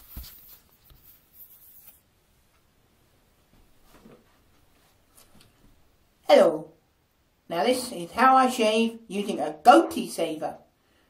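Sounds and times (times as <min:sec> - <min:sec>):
faint scraping and rustling: 0:00.0 - 0:02.6, 0:03.5 - 0:05.8.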